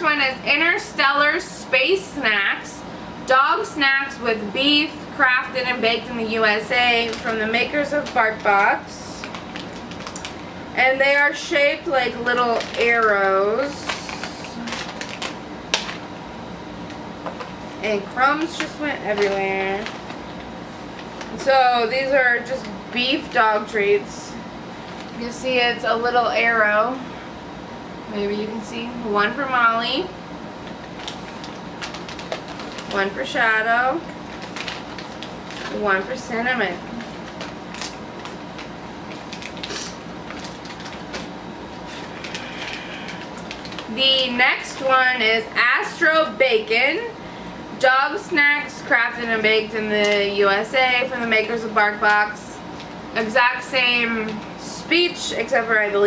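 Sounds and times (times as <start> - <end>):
low room hum: 0.0 - 56.0
plastic pouch crinkling and ripping: 6.9 - 10.5, 12.1 - 13.2, 13.8 - 16.1, 18.5 - 21.4, 30.7 - 33.0, 34.1 - 35.8, 36.9 - 44.0.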